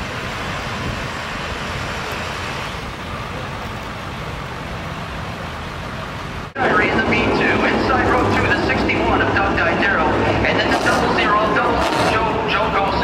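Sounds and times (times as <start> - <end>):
motor vehicle engine rumble: 0.0 - 13.0.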